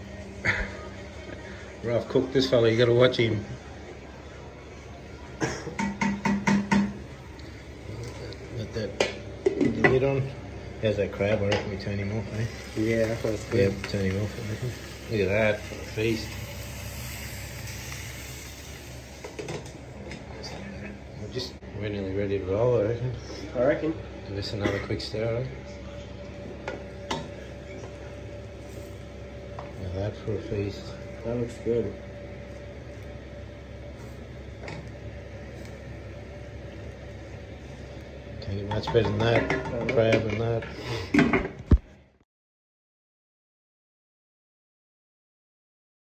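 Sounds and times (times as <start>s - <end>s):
steady kitchen hum: 0.0s - 42.2s
food sizzling in covered pans: 10.9s - 20.4s.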